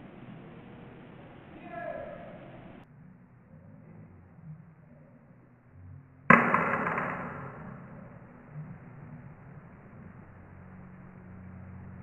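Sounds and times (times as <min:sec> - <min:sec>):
loud impact: 0:06.3 - 0:08.2.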